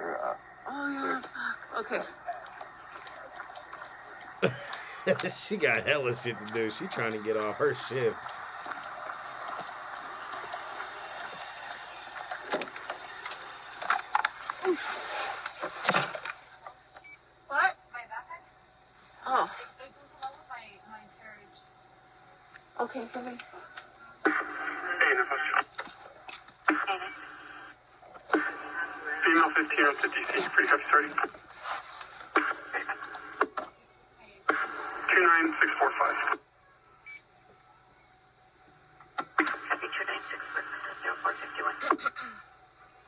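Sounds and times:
tinny two-way radio voices: 4.4 - 12.0, 28.3 - 31.4, 34.5 - 36.4, 39.4 - 42.1.

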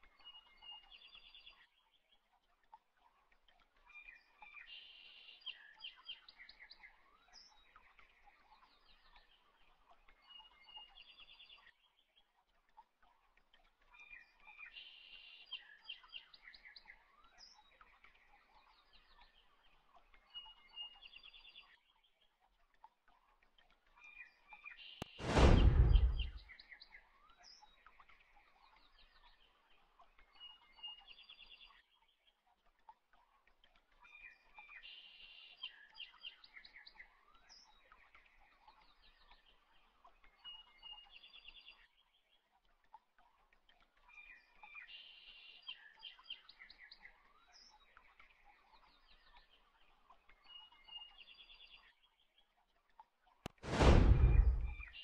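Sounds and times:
faint birdsong chirps and trills: 0.0 - 25.2, 25.9 - 53.4, 54.7 - 55.0.

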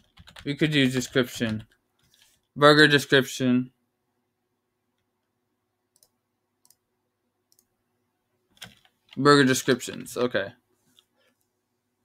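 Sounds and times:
faint clicks: 5.9 - 6.8.

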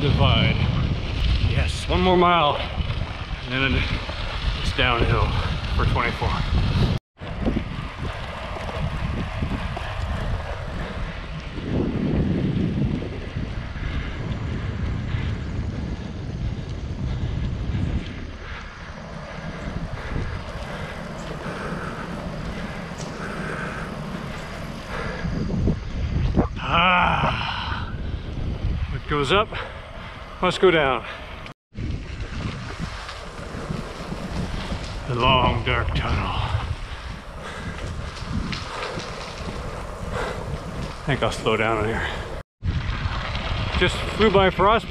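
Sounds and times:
wind noise on microphone: 0.0 - 44.9.

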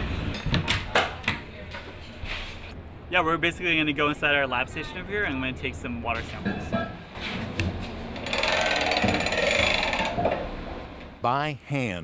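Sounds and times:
rope ratcheting through pulley: 8.2 - 10.2.

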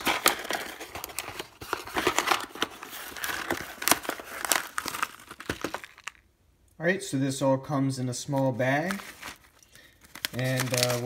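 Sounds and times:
cardboard box being opened: 0.0 - 6.1
paper bag rustling and crinkling: 0.0 - 6.2, 8.3 - 11.0.

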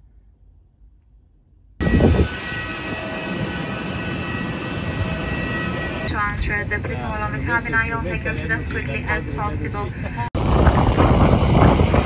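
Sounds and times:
jet airliner whine and rumble: 1.8 - 12.0.

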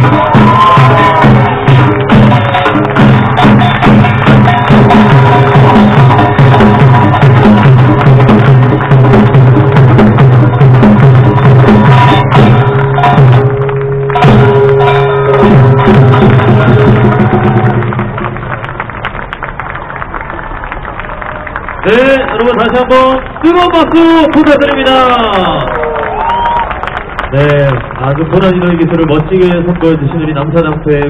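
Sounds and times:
percussion band drums and gongs: 0.0 - 31.0.

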